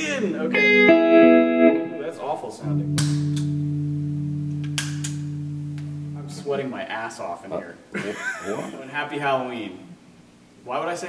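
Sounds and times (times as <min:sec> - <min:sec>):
electric guitar chord ringing: 0:00.0 - 0:06.7.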